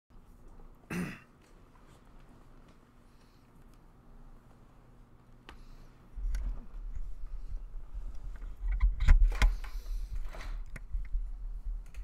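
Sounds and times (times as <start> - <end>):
low electrical hum: 0.1 - 12.0.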